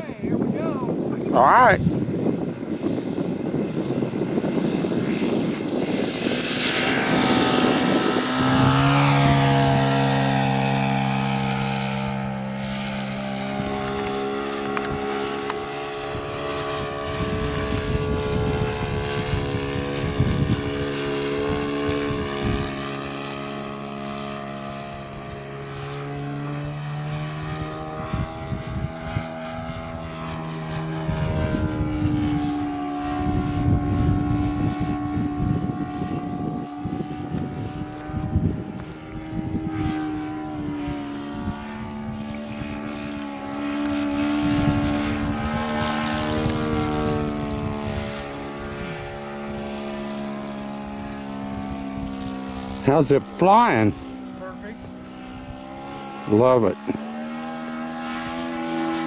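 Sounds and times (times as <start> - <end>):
model plane engine at high throttle: 0.0 - 59.0.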